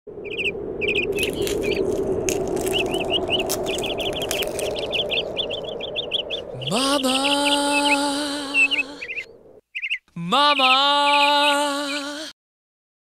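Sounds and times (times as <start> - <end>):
low rushing background: 0.1 - 9.6
birds chirping: 0.2 - 12.2.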